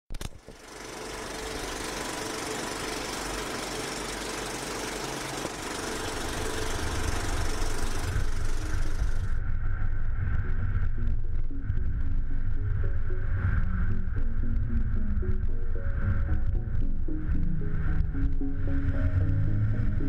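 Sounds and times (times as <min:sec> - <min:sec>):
road noise hiss: 0:00.6 - 0:09.4
low road rumble: 0:05.3 - 0:11.0.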